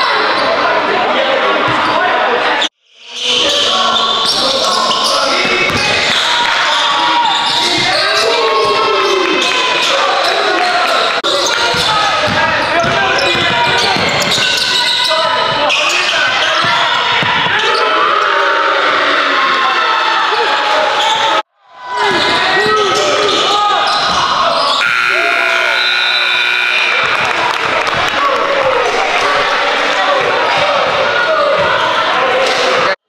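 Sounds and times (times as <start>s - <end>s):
sneakers squeaking: 3.2s - 17.9s, 22.1s - 27.2s
people shouting in a gym: 3.2s - 27.4s, 28.1s - 33.0s.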